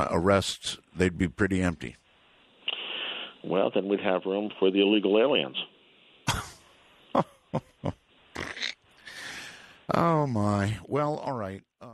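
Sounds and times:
man laughing: 0:06.3 - 0:08.0.

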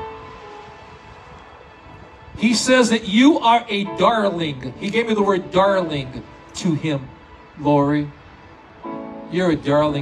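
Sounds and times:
electronic keyboard chord: 0:00.0 - 0:01.0, 0:08.7 - 0:10.0.

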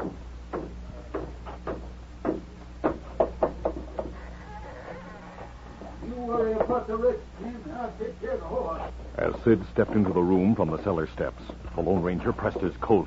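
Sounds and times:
faint creak: 0:04.0 - 0:06.0
footsteps on wooden stairs: 0:09.3 - 0:10.5.

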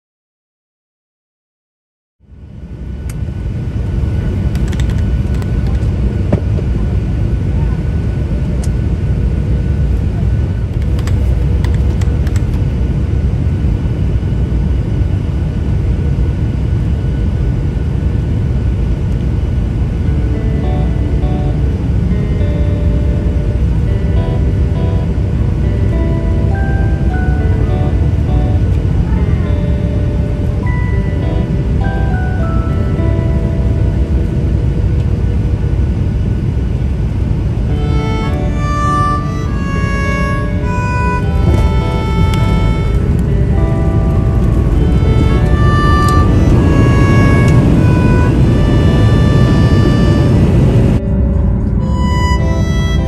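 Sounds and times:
jet cabin low rumble: 0:02.3 - 0:53.0.

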